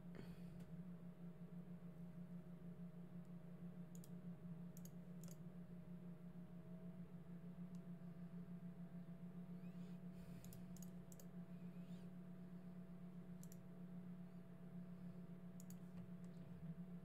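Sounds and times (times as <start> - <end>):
low electrical hum: 0.0 - 17.0
computer mouse clicks: 3.9 - 4.2, 4.8 - 5.4, 9.7 - 12.0, 13.4 - 13.6, 15.6 - 16.4.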